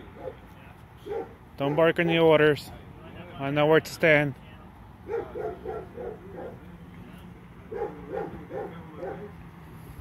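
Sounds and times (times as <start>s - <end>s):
dog barking: 1.0s - 2.2s, 5.1s - 6.6s, 7.7s - 9.3s.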